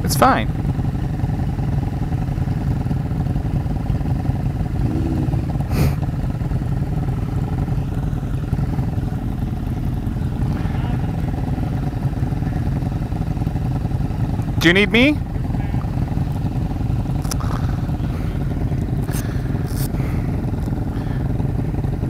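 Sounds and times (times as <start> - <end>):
motorcycle engines idling: 0.0 - 22.0.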